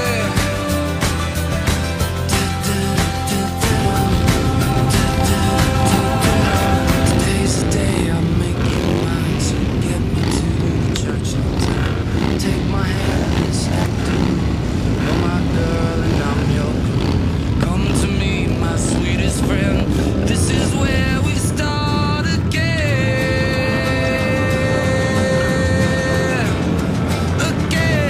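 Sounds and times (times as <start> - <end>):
background music: 0.0 - 28.0
motorcycle engines rumbling: 0.0 - 28.0
people's voices: 0.0 - 28.0.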